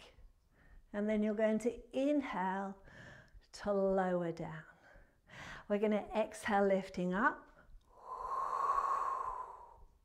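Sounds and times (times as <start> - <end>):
woman exhaling through mouth: 7.9 - 9.9.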